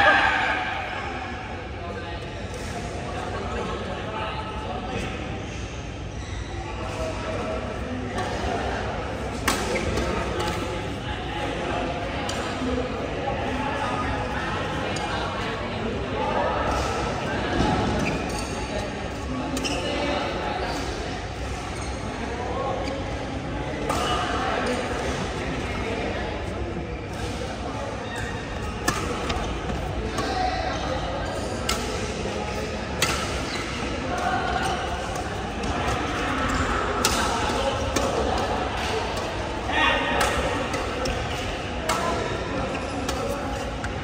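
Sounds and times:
rackets hitting shuttlecock: 0:28.8 - 0:30.4, 0:34.2 - 0:39.4.

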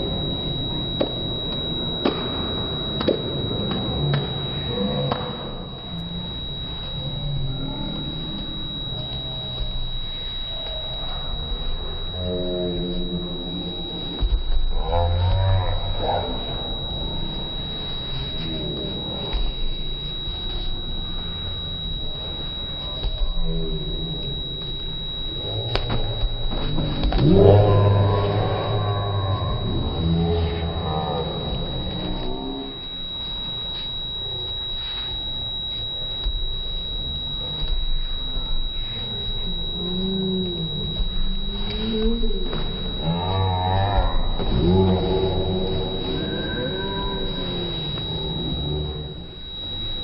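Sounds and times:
steady high whine: 0:00.0 - 0:50.0.

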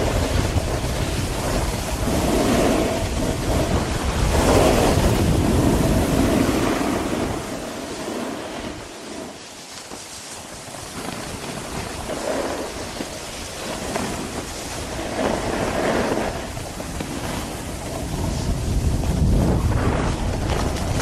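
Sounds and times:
snowboards scraping on snow: 0:00.0 - 0:21.0
wind rushing over microphone: 0:00.0 - 0:21.0.

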